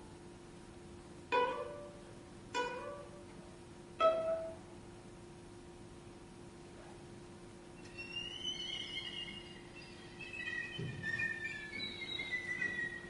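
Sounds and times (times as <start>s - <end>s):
violin gliding high notes: 7.9s - 13.0s.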